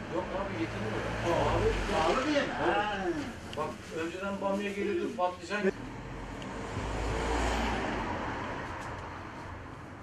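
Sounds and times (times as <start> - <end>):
vehicle passing by rumble: 5.7 - 9.6.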